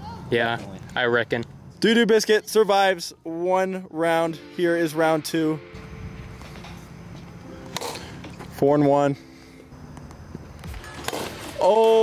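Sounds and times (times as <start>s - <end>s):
low steady rumble: 5.1s - 7.7s
plastic bat hitting ball: 11.0s - 11.6s.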